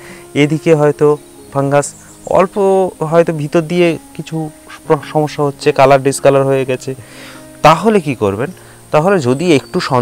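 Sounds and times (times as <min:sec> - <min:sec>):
man speaking: 0:00.4 - 0:07.0, 0:07.6 - 0:10.0.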